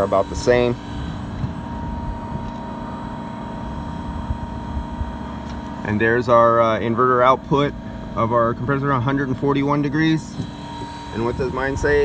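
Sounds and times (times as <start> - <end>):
faint steady tones: 0.0 - 12.0
outdoor air conditioning unit humming: 0.0 - 12.0.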